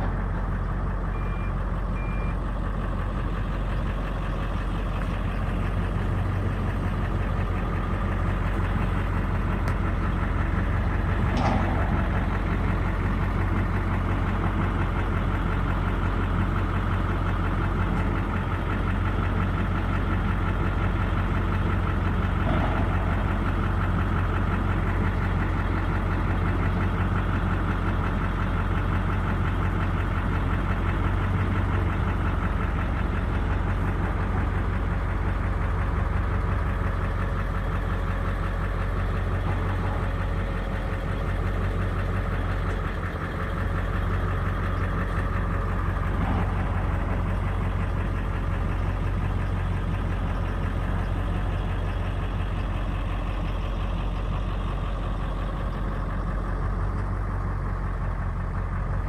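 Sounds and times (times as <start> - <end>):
vehicle engine idling: 0.0 - 59.0.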